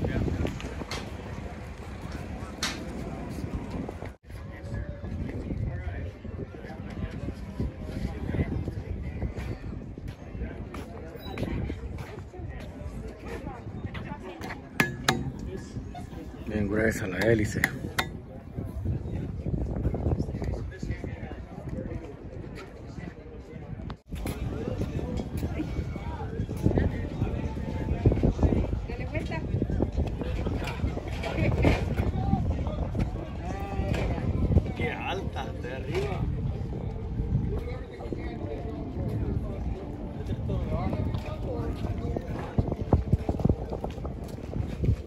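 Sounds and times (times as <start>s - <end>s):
people talking: 0.0s - 45.0s
wind on microphone: 0.0s - 45.0s.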